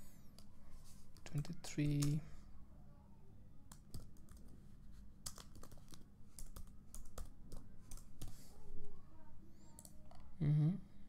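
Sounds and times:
typing on computer keyboard: 0:03.7 - 0:04.6, 0:05.2 - 0:08.4.

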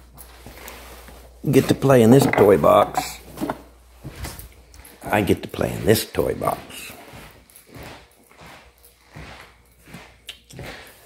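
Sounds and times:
footsteps on hardwood floor: 0:00.0 - 0:11.0.

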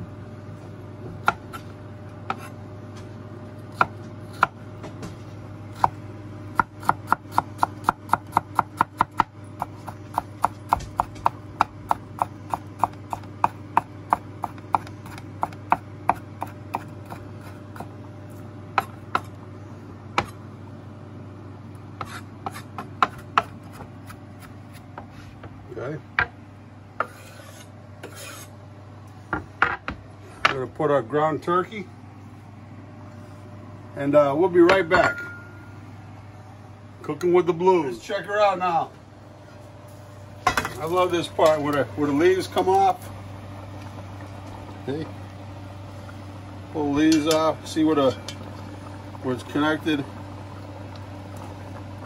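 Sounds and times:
steady low hum: 0:00.0 - 0:52.0
knife chopping on wooden board: 0:01.2 - 0:02.5, 0:03.7 - 0:04.6, 0:05.8 - 0:06.0, 0:06.6 - 0:17.9, 0:18.8 - 0:19.3, 0:22.0 - 0:25.1.

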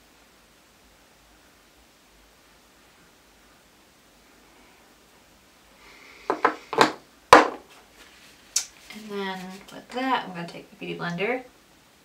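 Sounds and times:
objects knocking on hard surface: 0:06.3 - 0:07.8.

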